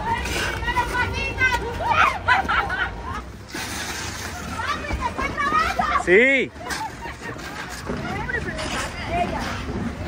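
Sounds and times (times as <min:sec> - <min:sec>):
background chatter: 0:00.0 - 0:10.0
people talking and calling out: 0:00.0 - 0:10.0.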